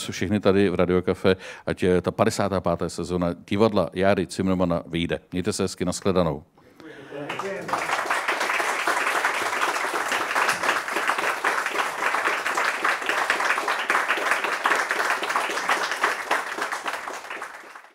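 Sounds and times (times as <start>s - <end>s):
audience applauding: 7.0s - 17.9s.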